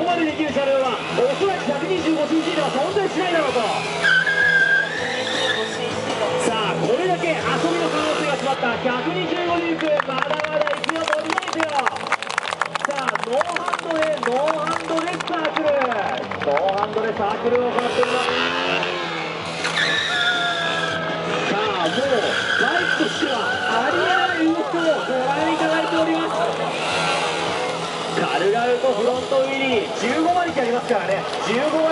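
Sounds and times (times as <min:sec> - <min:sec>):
motorcycle tyre squealing: 0:00.0 - 0:08.7, 0:17.8 - 0:31.9
motorcycle engine running: 0:00.0 - 0:12.1, 0:16.8 - 0:22.8, 0:23.4 - 0:31.9.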